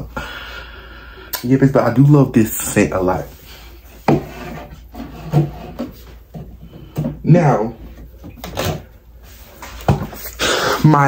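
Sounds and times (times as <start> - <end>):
bottles scraping on wooden shelf: 3.9 - 7.2.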